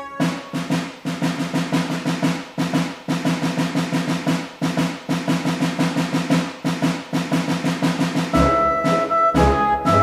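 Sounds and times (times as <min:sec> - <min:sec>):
drums playing march rhythm: 0:00.0 - 0:10.0.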